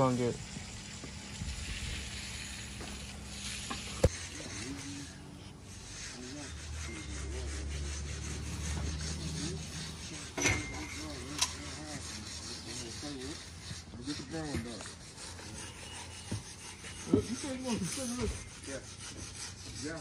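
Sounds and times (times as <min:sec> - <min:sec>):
broom scraping wet concrete: 0:00.0 - 0:20.0.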